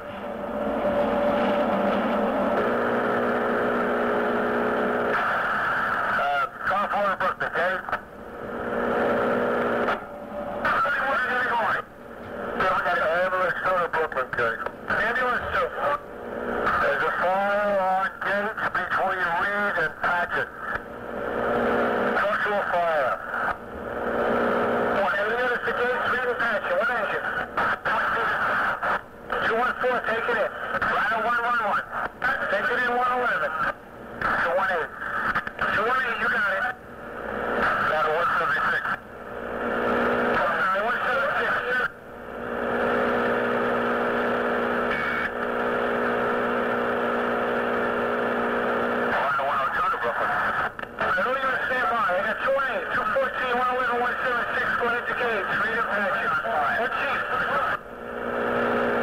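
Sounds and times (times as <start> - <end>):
buzzing carrier hum: 0.0 - 59.0
radio squelch: 4.8 - 59.0
garbled radio voices: 5.0 - 43.4, 49.0 - 57.8.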